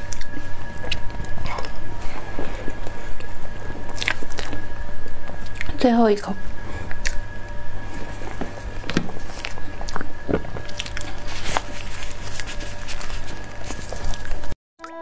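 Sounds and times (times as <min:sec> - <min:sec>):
background hum: 0:00.0 - 0:14.6
squishy chewing: 0:09.2 - 0:14.4.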